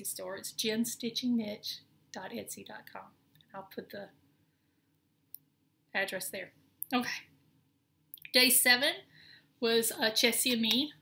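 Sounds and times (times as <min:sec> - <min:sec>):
woman speaking: 0:00.0 - 0:04.2, 0:05.9 - 0:07.3, 0:08.2 - 0:11.0.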